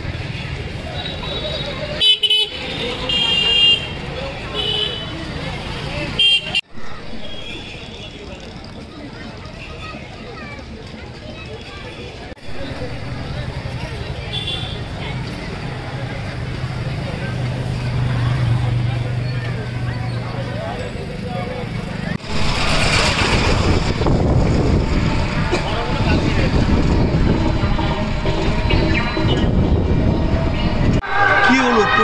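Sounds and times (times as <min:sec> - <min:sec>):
crowd voices: 0:00.0 - 0:32.0
traffic noise: 0:00.0 - 0:32.0
engine hum: 0:12.1 - 0:31.0.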